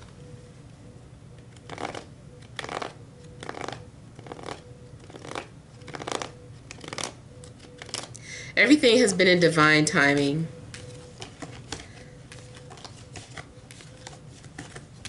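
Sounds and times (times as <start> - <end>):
cards being shuffled: 1.4 - 8.2, 10.7 - 15.0.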